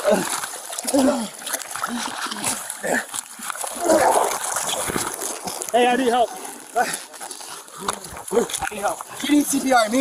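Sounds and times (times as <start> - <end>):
people gasping and grunting: 0.0 - 5.6, 6.3 - 9.6
river water splashing: 0.0 - 10.0.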